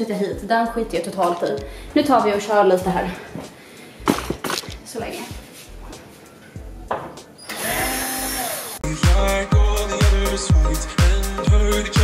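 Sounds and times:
cordless drill motor whine: 0:07.4 - 0:08.8.

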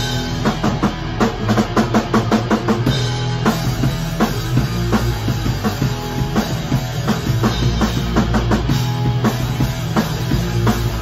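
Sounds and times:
fast drum hits: 0:00.0 - 0:11.0
full band with cymbals: 0:00.0 - 0:11.0.

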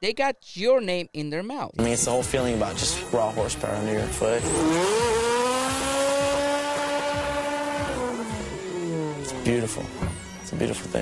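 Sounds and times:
car engine revving: 0:01.8 - 0:11.0.

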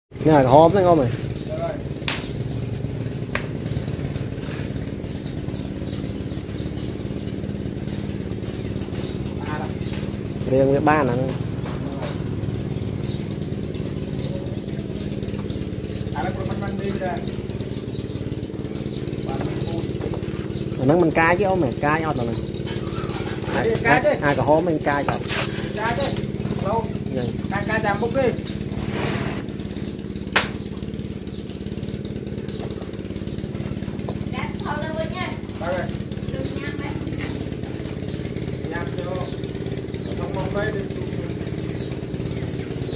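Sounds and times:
small engine idling: 0:00.1 - 0:42.9.

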